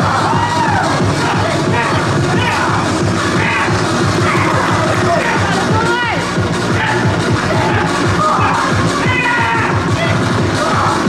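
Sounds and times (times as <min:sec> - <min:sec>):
electronic music with fast beat: 0:00.0 - 0:11.0.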